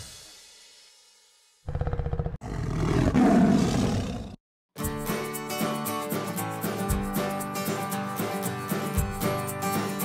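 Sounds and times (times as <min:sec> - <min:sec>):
music: 0:00.0 - 0:01.6, 0:04.8 - 0:10.0
big cat roaring: 0:01.7 - 0:04.4.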